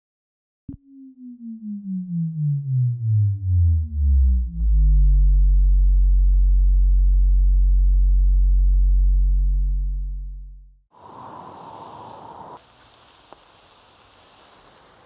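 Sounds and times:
deep electronic tone sliding down: 0:00.7 - 0:10.5
low bass drone: 0:00.7 - 0:10.8.

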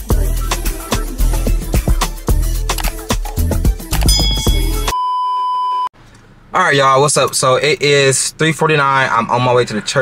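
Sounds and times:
background music with a beat: 0:00.0 - 0:05.0
steady electronic beep: 0:04.1 - 0:05.9.

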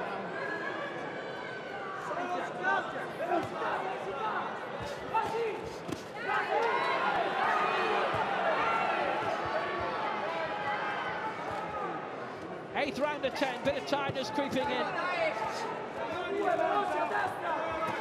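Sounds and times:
crowd shouting and cheering: 0:00.0 - 0:18.0.

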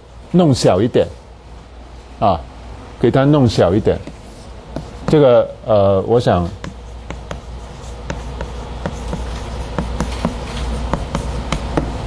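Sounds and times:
steady low hum: 0:00.0 - 0:12.0
chalk tapping on blackboard: 0:04.0 - 0:05.2, 0:06.4 - 0:12.0.

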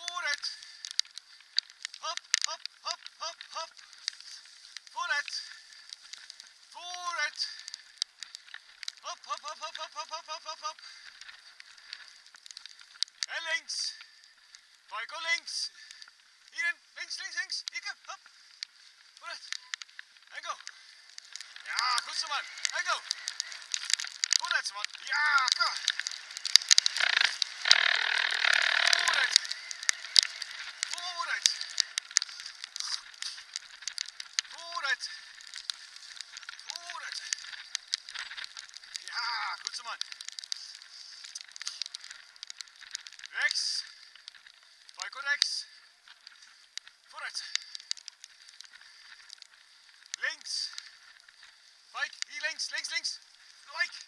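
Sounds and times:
bicycle tyres crackling on dirt: 0:00.0 - 0:54.0
bicycle frame rattling: 0:20.0 - 0:45.0
short high squeaks: 0:26.9 - 0:30.4.

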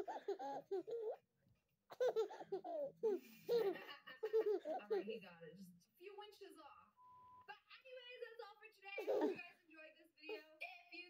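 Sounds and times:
baby laughing: 0:00.0 - 0:01.2, 0:01.9 - 0:05.1, 0:09.0 - 0:09.4
woman laughing: 0:02.2 - 0:05.1.

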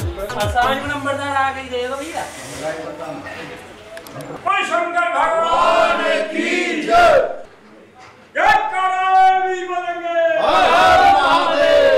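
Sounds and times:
men shouting a chant: 0:05.1 - 0:07.4, 0:08.4 - 0:11.9.

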